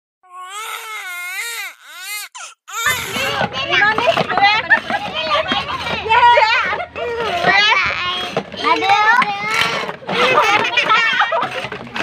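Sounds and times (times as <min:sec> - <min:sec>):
children and women talking excitedly: 0:02.7 - 0:12.0.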